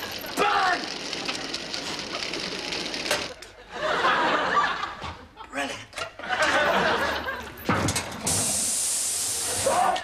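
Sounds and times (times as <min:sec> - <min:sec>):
studio audience laughing: 0:03.4 - 0:05.5, 0:06.1 - 0:07.7.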